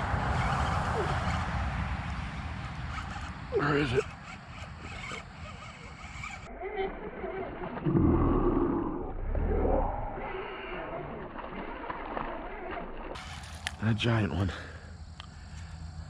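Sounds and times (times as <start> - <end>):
fish thrashing and splashing: 10.5 - 13.8.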